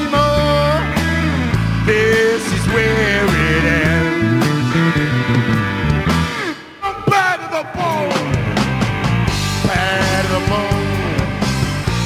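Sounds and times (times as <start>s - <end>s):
live blues rock band: 0.0s - 12.0s.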